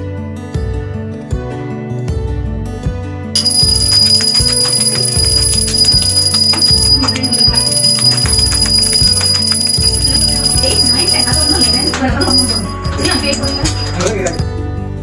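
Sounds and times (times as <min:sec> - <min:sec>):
background music: 0:00.0 - 0:15.0
hand bell ringing: 0:03.4 - 0:14.6.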